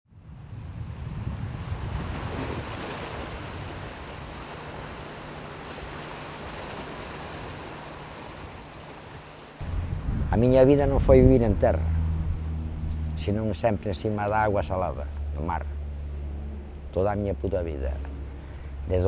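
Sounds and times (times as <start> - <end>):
sea surf washing: 0.2 - 19.0
low rumble: 9.6 - 19.0.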